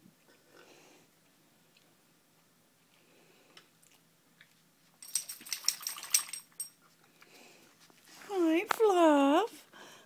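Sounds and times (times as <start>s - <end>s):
dog collar tags jingling: 5.0s - 6.8s.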